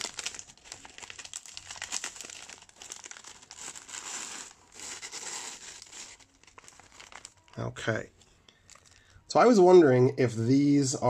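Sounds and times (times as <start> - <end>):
foil chip bag crinkling: 0.0 - 7.6, 8.6 - 9.2.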